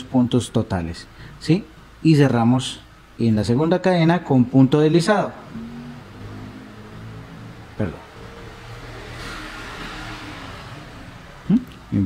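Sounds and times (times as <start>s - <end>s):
steady low hum: 0.0s - 9.1s.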